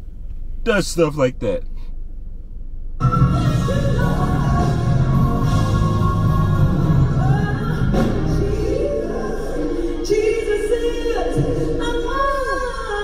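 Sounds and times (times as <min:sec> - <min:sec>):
low hum: 0:01.3 - 0:13.0
band playing: 0:03.0 - 0:09.0
backing singers: 0:03.0 - 0:12.1.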